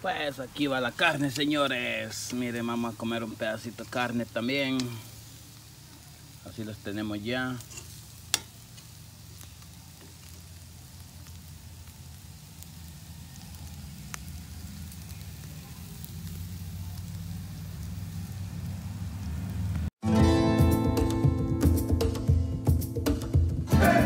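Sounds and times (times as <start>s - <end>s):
charcoal crackles and pop: 0.0s - 20.0s
meat sizzling on grill: 0.0s - 20.0s.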